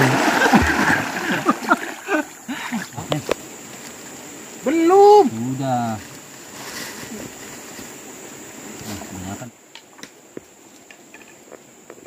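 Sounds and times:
droplets plopping into river: 0.0s - 2.0s
river water splashing: 0.0s - 5.1s.

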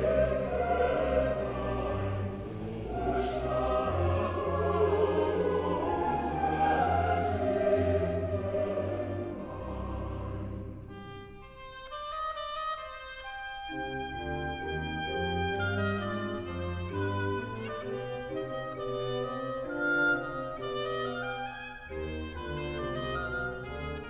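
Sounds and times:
strings and continuo: 0.0s - 24.0s
solo oboe melody: 10.7s - 24.0s.

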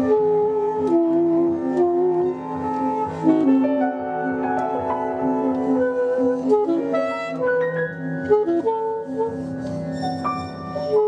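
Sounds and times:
alto saxophone: 0.0s - 11.0s
jazz quartet playing: 0.0s - 11.0s.

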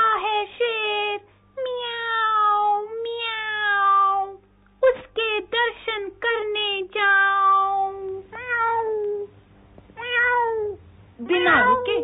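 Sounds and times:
cat meowing: 7.1s - 9.3s, 10.0s - 10.8s.

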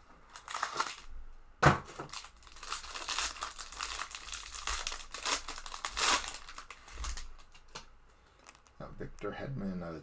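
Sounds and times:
foil wrapper crinkling: 0.3s - 1.1s, 1.9s - 8.8s.

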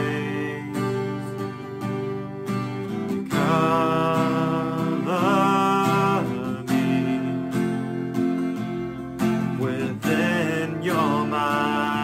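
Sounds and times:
man singing: 0.0s - 2.2s, 3.1s - 8.3s, 9.2s - 12.0s
strummed acoustic guitar: 0.0s - 12.0s.

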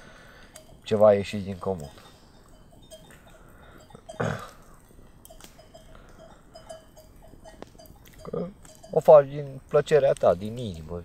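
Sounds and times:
campfire crackles: 0.0s - 11.0s
sheep bells tinkling: 0.0s - 11.0s.

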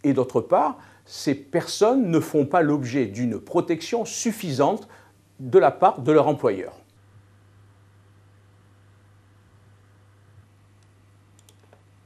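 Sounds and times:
low room hum: 0.0s - 12.0s
computer mouse clicks: 10.8s - 11.9s.

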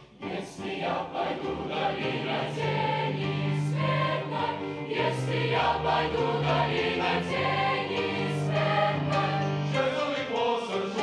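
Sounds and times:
mixed choir singing a hymn: 0.0s - 11.0s.

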